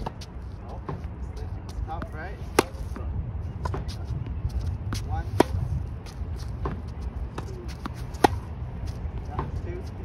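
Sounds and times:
tennis racket hitting ball: 0:02.5 - 0:03.0, 0:04.9 - 0:05.7, 0:06.6 - 0:08.5.

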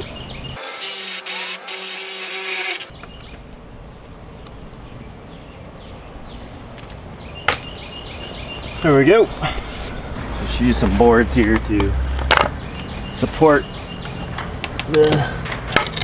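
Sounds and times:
drill boring through wood: 0:00.6 - 0:02.9.

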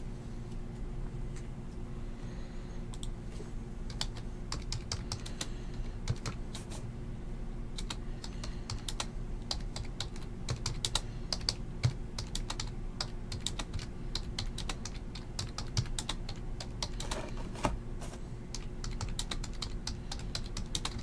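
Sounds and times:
low steady hum: 0:00.0 - 0:21.0
typing on computer keyboard: 0:03.9 - 0:06.4, 0:07.8 - 0:17.2, 0:18.5 - 0:21.0.

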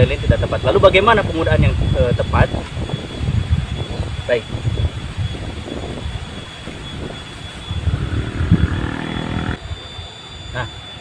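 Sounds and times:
wind buffeting microphone: 0:00.0 - 0:09.8
faint steady hum: 0:05.5 - 0:09.8.

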